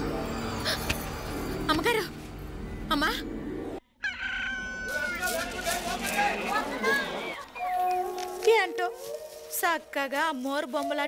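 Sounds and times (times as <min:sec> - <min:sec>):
rooster crowing: 0:04.0 - 0:05.3.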